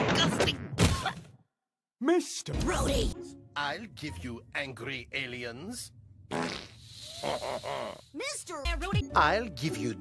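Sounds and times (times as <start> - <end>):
cartoon fart sound effect: 6.3 - 8.1.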